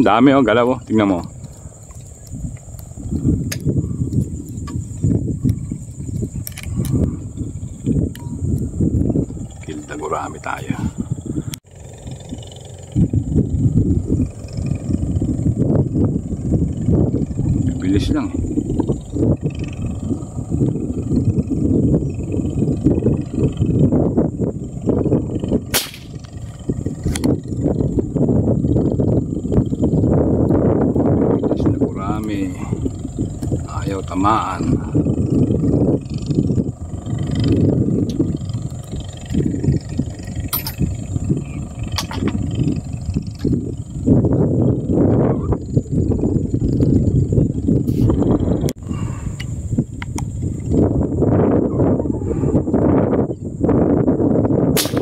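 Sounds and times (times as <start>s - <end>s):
high-pitched insect drone: 0.0s - 55.0s
wind buffeting microphone: 0.0s - 55.0s
air rifle shot: 25.7s - 26.2s, 54.7s - 55.0s.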